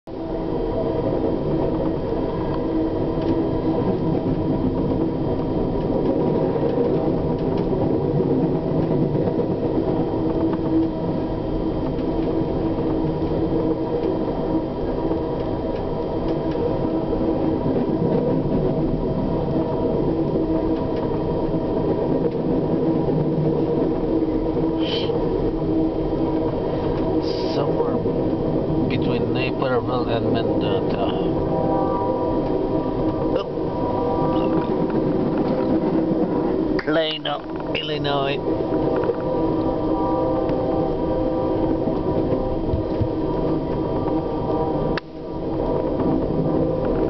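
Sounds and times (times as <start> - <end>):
passing freight train rush: 0.1 - 47.0
train wheels rumbling on rail: 0.1 - 47.0.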